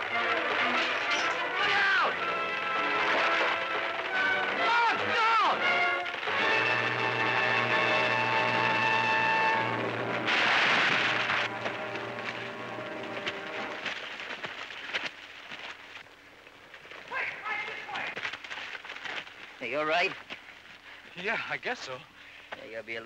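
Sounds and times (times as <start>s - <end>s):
tree crashing down: 0.0s - 15.9s
long held steady note: 5.7s - 10.3s.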